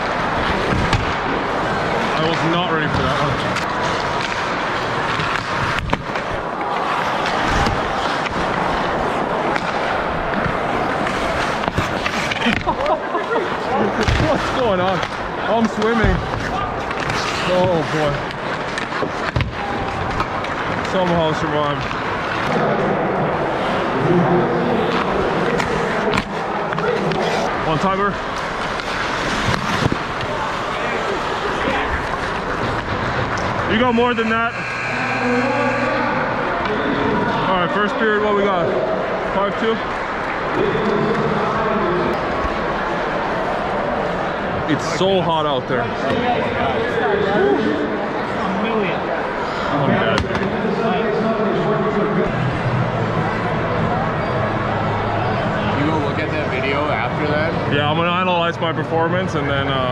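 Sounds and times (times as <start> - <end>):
arena crowd hum: 0.0 - 59.9
skating rink noise: 0.0 - 59.9
skate blades scraping ice: 3.2 - 12.9, 15.8 - 20.8, 24.8 - 35.1.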